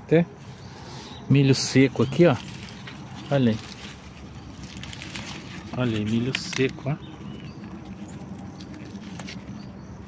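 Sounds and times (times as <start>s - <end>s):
corn husk rustling and clicking: 2.1s - 9.7s.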